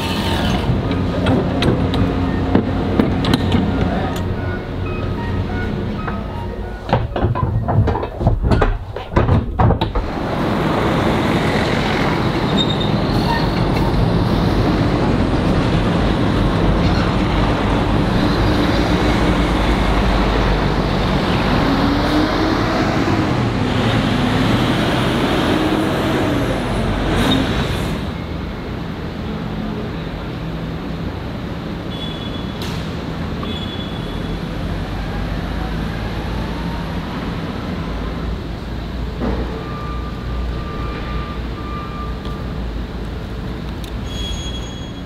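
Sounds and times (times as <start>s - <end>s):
diesel truck engines rumbling: 0.0s - 45.0s.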